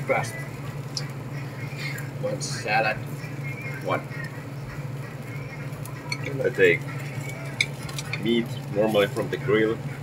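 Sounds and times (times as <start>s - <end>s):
ventilation fan humming: 0.0s - 10.0s.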